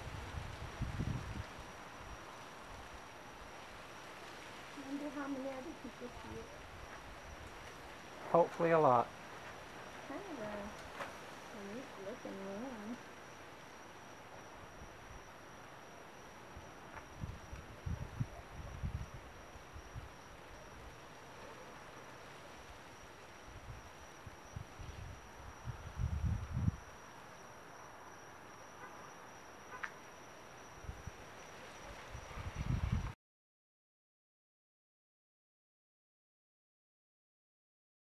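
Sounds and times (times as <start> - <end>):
background hiss: 0.0 - 33.2
thin steady high tone: 4.8 - 7.4, 9.8 - 10.8, 11.5 - 21.0, 22.6 - 33.0.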